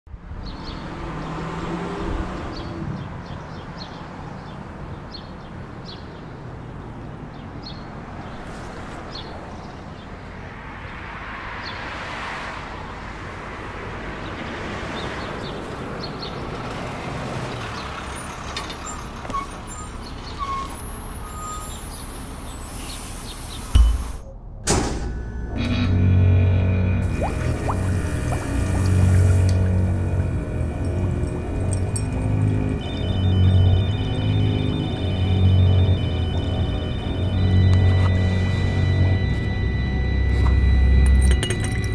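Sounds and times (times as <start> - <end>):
traffic rumble: 0.1 - 24.6, 25.6 - 41.9.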